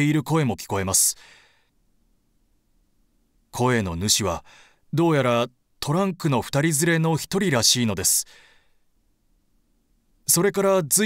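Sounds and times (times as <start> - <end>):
narrator speaking: 0.0 - 1.2, 3.5 - 8.3, 10.3 - 11.0
soft breath: 1.2 - 1.8, 4.4 - 4.9, 8.2 - 8.9.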